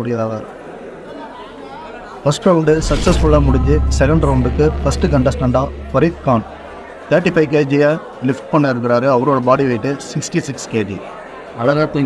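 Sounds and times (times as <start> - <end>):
deep music bass: 2.7 - 6.9.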